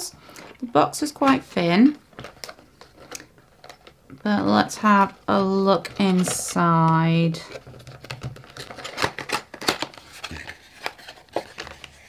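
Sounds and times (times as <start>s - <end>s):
cardboard box being opened: 7.5s - 12.0s.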